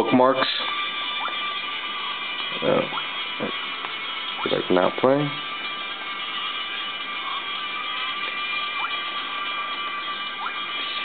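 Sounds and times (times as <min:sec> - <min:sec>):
faint steady tones: 0:00.0 - 0:11.0.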